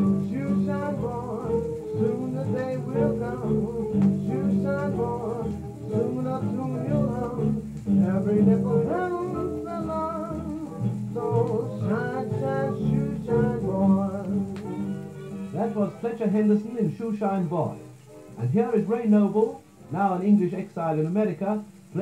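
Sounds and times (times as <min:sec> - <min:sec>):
dance band music from a record: 0:00.0 - 0:22.0.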